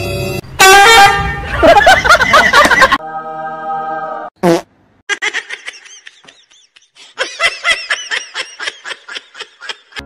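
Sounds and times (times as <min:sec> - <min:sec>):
horn-like blast: 0:00.0 - 0:01.5.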